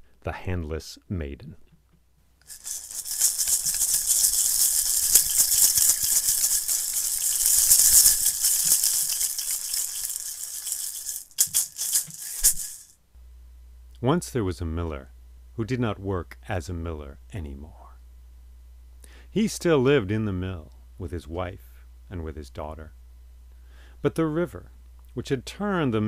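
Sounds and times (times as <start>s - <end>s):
hand-held rattle shaken: 2.4s - 13.0s.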